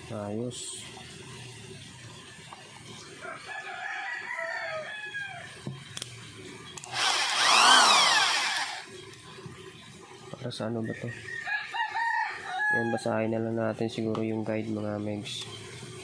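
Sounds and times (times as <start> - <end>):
rooster crowing: 3.2 - 5.6, 11.1 - 13.1.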